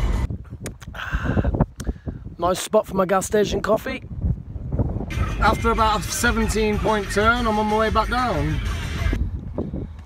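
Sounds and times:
breathy sigh: 0.9 - 2.1.

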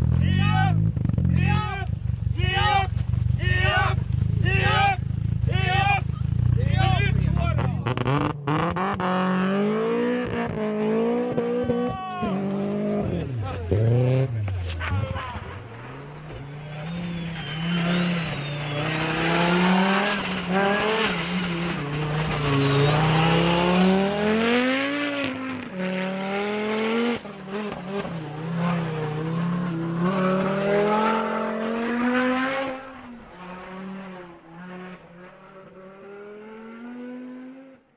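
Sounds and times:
rally car engine revving: 0.0 - 37.9
tyres skidding on snow: 1.4 - 36.7.

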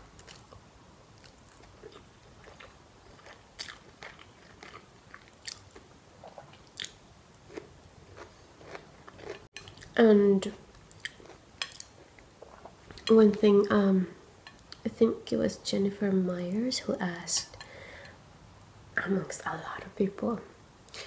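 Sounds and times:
person chewing noodles: 0.2 - 10.0, 10.7 - 13.1.

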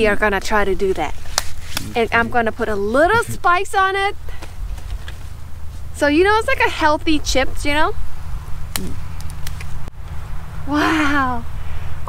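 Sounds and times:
steady low rumble: 0.0 - 12.0
leaf stem snapping: 8.7 - 9.7.

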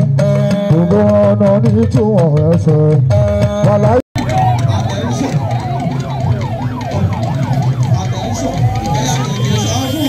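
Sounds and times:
rising siren tone: 4.2 - 10.0
siren yelping: 4.2 - 10.0.

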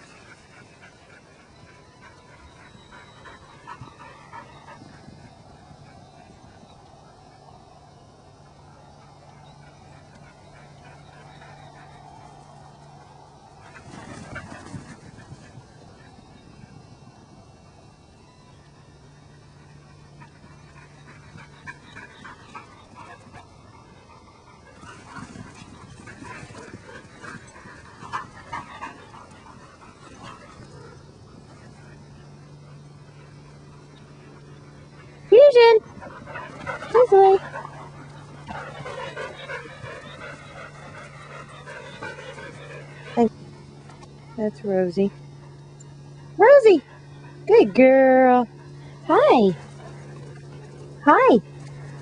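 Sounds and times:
low steady hum: 0.0 - 52.0
dog panting: 20.1 - 31.0, 35.0 - 43.4.

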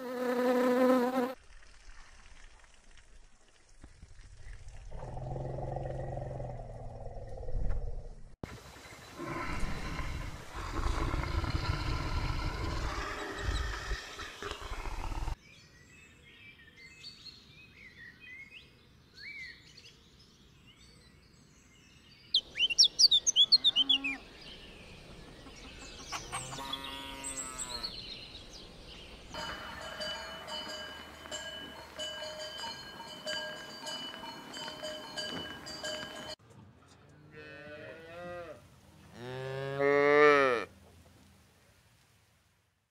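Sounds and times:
high chirping: 22.3 - 24.3
cattle mooing: 39.2 - 40.7.

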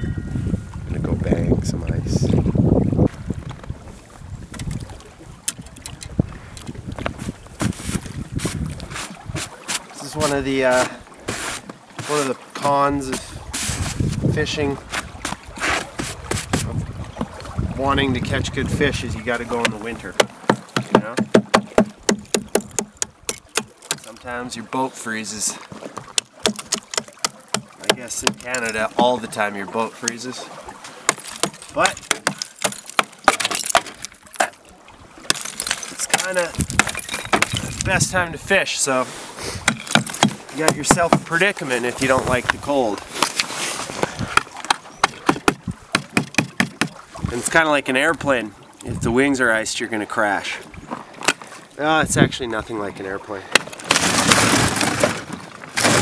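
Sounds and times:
hammer knocking on metal: 19.6 - 24.0
hammer banging on ice: 19.6 - 24.1, 26.1 - 29.2, 31.1 - 34.5, 35.3 - 37.9, 39.7 - 41.3, 44.4 - 47.0, 53.5 - 55.1.

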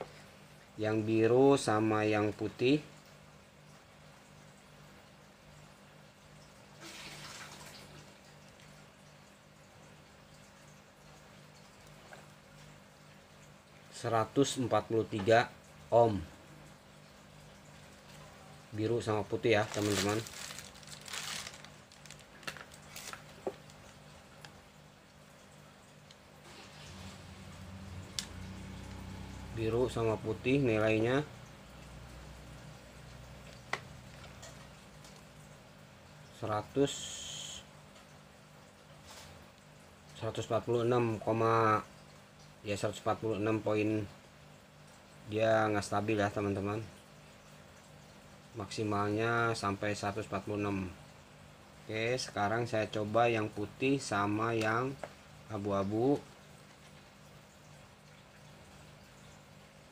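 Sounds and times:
low steady hum: 0.0 - 59.9
wires rustling: 19.3 - 24.1.

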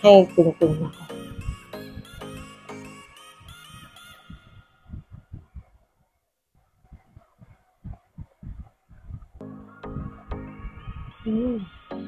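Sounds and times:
background music: 0.0 - 4.7, 9.4 - 12.0
soft low thuds: 4.9 - 5.8, 6.9 - 11.1.

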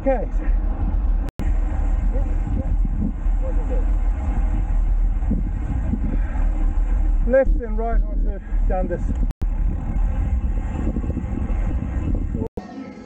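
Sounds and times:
tyre and road noise: 0.0 - 12.5
wind rumbling over microphone: 0.0 - 12.5.

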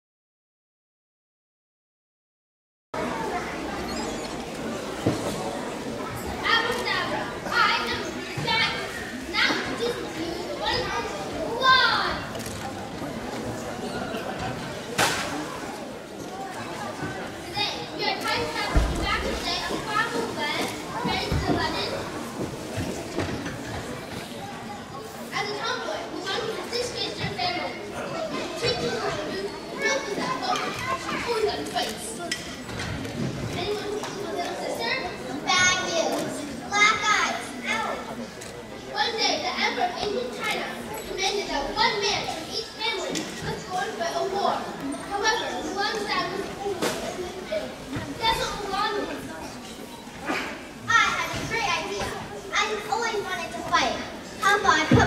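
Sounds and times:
girls speaking into microphones: 3.0 - 14.5, 15.1 - 55.0.

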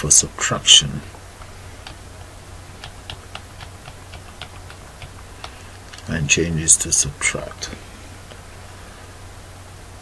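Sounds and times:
low steady hum: 0.0 - 10.0
computer keyboard clicks: 2.8 - 6.0.

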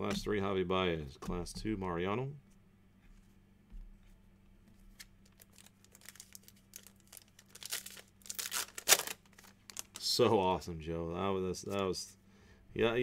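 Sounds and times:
packaging crinkling and ripping: 5.0 - 10.2.

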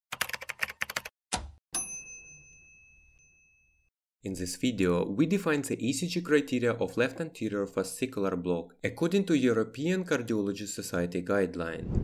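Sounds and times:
bright bell ding: 1.8 - 3.9.

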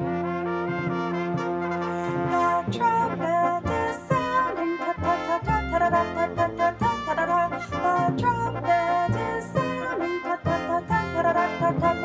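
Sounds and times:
woman singing layered a cappella parts: 2.3 - 12.0.

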